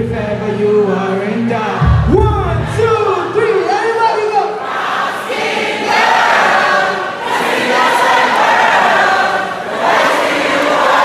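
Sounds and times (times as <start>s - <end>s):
concert crowd singing along: 0.0s - 11.0s.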